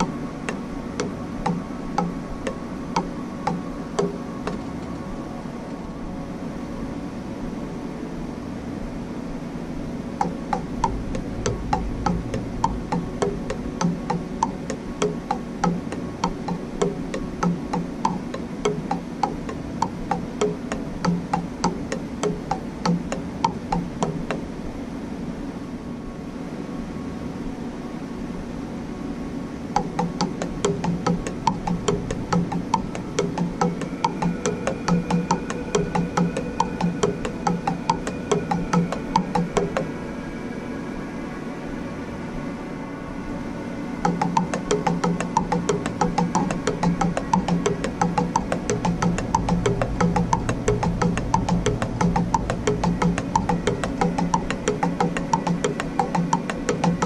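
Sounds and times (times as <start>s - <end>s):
drumsticks on practice pad: 0.0s - 5.0s, 10.2s - 24.5s, 29.8s - 40.1s, 44.0s - 57.0s
background hum: 0.0s - 57.0s.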